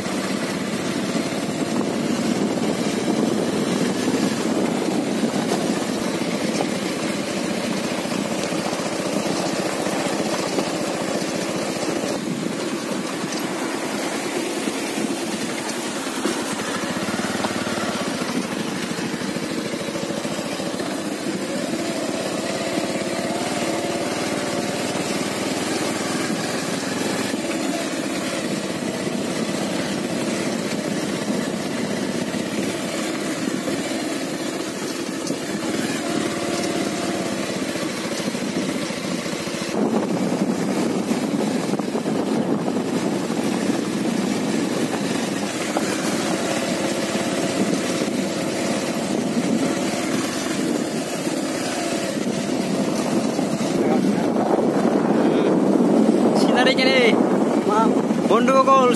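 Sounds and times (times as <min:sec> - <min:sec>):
tyres on gravel road: 0:00.0 - 0:58.9
vehicle engine running: 0:00.0 - 0:58.9.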